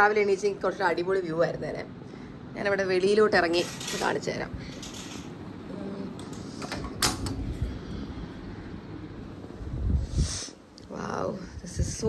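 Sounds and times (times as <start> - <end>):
sliding glass door rumble: 3.2 - 5.7.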